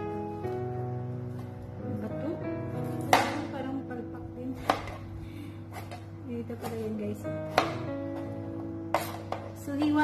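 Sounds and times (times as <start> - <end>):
background music: 0.0 - 10.0
knife chopping on cutting board: 7.5 - 7.9, 8.9 - 9.5.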